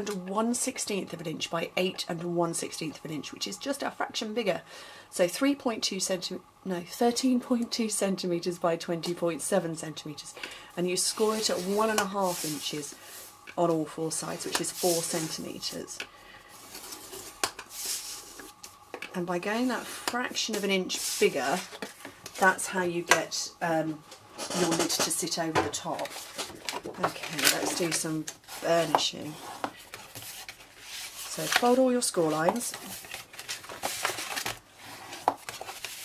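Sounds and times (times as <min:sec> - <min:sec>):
cardstock rustling being folded: 0:11.1 - 0:13.0, 0:13.6 - 0:15.8, 0:16.6 - 0:22.6, 0:25.8 - 0:36.0.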